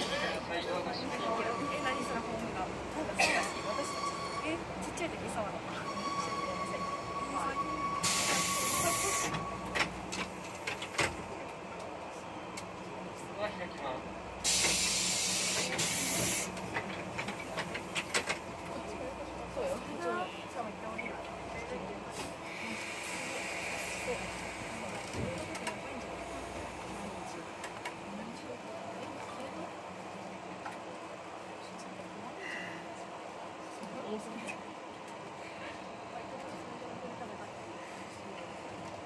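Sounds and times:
passengers' voices: 0.0s - 39.0s
train cabin rumble: 14.3s - 19.7s
compressed air hissing: 14.4s - 16.5s.

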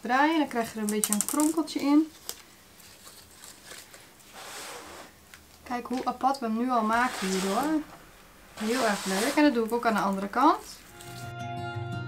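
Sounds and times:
leaf rustling: 6.8s - 11.3s.

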